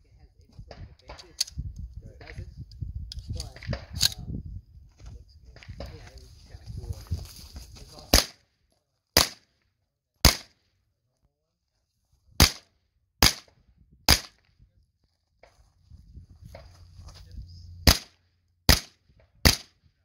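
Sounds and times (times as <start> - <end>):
sharp gunshots: 8.1 - 8.4, 9.2 - 9.5, 10.2 - 10.6, 12.4 - 14.4, 17.8 - 19.8.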